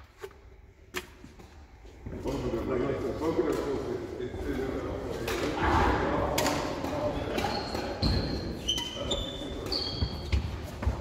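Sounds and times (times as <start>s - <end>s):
sports shoes squeaking on wood: 7.4s - 11.0s.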